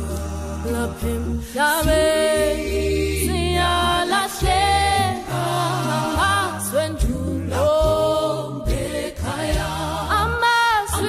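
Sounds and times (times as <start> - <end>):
group singing gospel in harmony: 0.0 - 11.0
low bass notes: 0.0 - 11.0.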